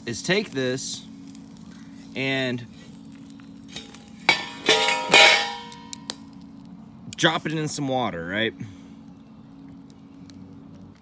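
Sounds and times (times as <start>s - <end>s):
metal pan clanging with tongs: 3.7s - 6.1s.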